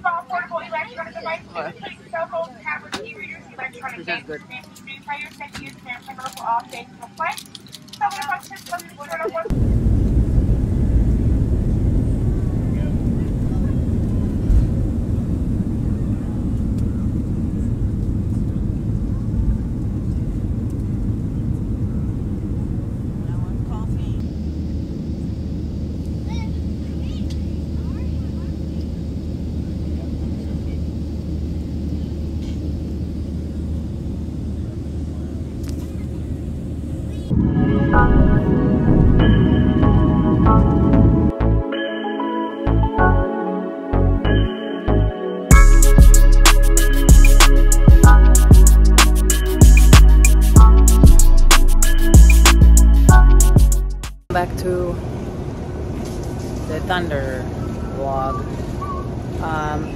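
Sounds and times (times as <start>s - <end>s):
airport terminal rumble: 0.0s - 41.6s, 54.3s - 59.9s
jet engine drone in cabin: 9.2s - 41.4s, 54.3s - 59.9s.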